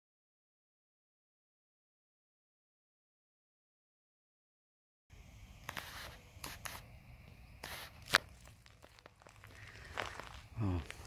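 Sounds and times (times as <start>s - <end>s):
footsteps on woodland path: 7.6s - 11.0s
sharp crack: 7.6s - 11.0s.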